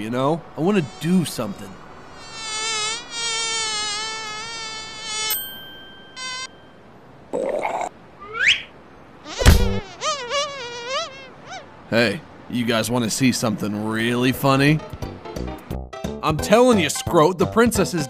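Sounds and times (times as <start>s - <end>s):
wavering buzz: 0.6s - 6.8s
wavering nasal vocal sound: 0.7s - 5.3s
loud thump: 9.4s - 9.8s.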